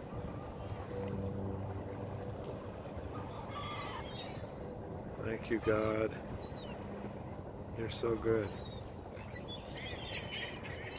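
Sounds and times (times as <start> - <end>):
low steady hum and rumble: 0.0 - 9.6
gulls calling: 2.6 - 10.9.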